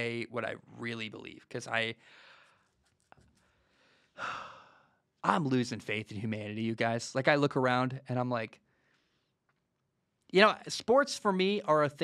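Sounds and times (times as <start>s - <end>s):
man sighing: 4.2s - 4.8s.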